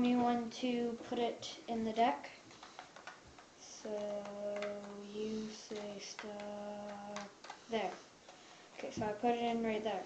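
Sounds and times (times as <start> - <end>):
playing cards being riffled: 2.5 - 8.4.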